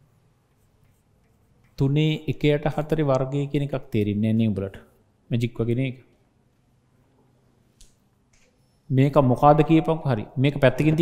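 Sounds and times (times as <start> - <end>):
chalk tapping on a chalkboard: 0.4 - 1.8.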